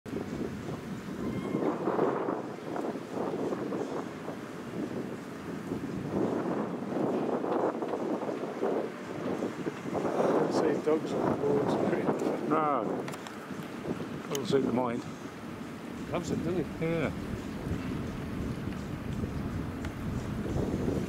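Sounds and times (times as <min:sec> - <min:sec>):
wind buffeting microphone: 0:00.1 - 0:21.0.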